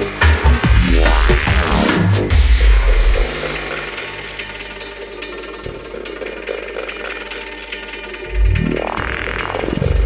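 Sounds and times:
downtempo electronic music: 0.0 - 10.0.

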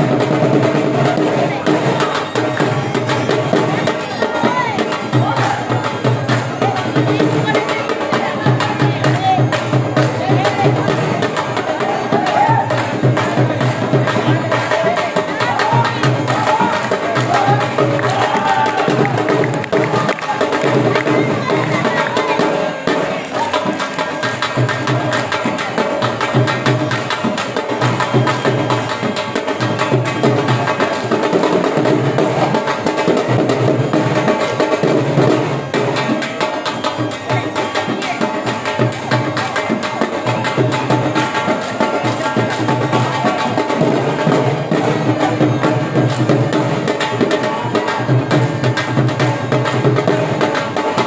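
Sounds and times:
dhol drumming: 0.0 - 51.0.

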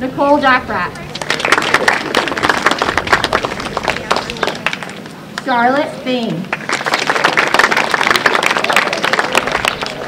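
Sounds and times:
audience applauding: 1.1 - 5.0, 6.5 - 10.0.

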